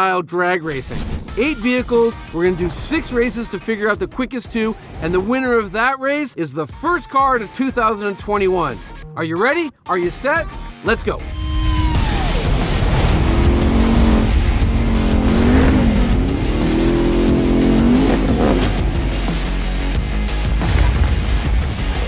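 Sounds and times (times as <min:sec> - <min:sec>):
music: 0:00.6 - 0:22.0
truck engine revving high: 0:11.7 - 0:21.2.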